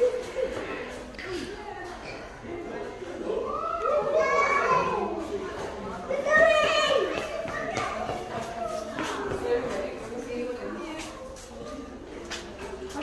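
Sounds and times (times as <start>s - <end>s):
young children calling and babbling: 3.2s - 10.0s.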